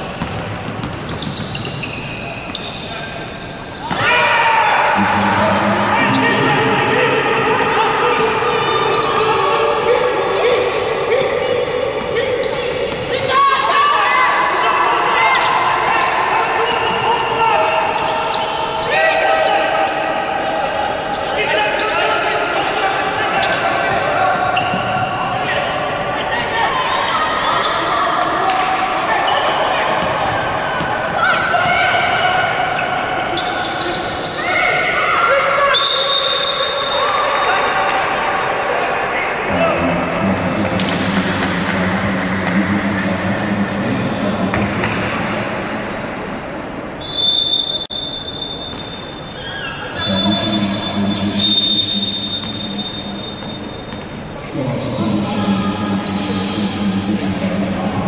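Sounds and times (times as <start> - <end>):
players and coaches voices: 1.4 - 58.0.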